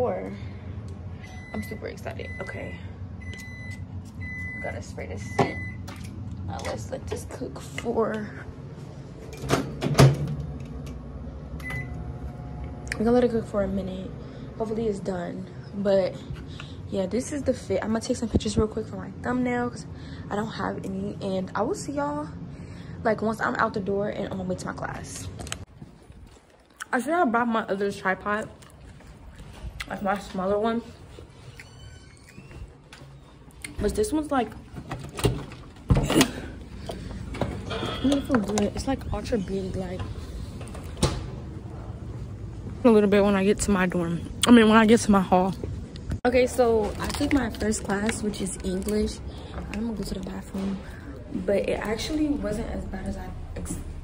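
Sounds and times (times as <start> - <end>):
microwave door shutting: 9.4 - 10.5.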